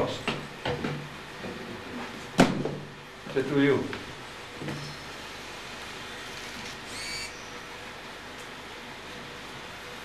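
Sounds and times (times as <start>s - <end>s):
faint steady hum: 0.0s - 10.0s
high-pitched squeak: 6.4s - 7.5s.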